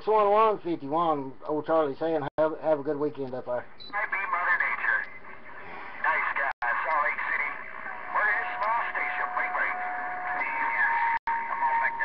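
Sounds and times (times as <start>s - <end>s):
garbled voice over radio: 3.9s - 5.4s, 6.0s - 12.0s
radio static: 3.9s - 12.0s.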